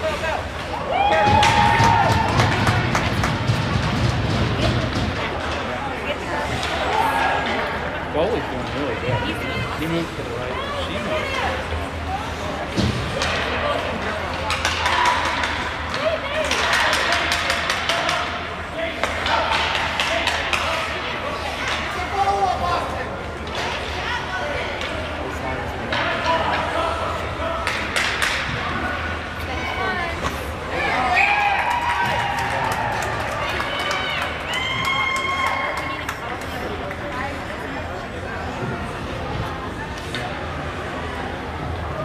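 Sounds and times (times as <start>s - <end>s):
spectators' voices and calls: 0.0s - 42.0s
hockey sticks and puck knocking: 0.6s - 5.7s, 12.7s - 22.1s, 25.9s - 26.9s, 27.5s - 28.8s.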